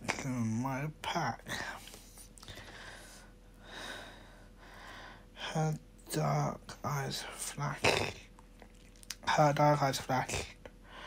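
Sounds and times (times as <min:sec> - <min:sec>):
man whispering: 0:00.0 - 0:02.5, 0:05.4 - 0:08.4, 0:09.1 - 0:10.7.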